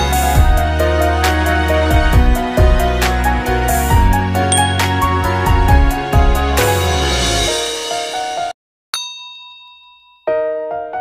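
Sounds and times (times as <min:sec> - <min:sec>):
background music: 0:00.0 - 0:08.5
bright chime ding: 0:04.5 - 0:05.3, 0:09.0 - 0:10.3.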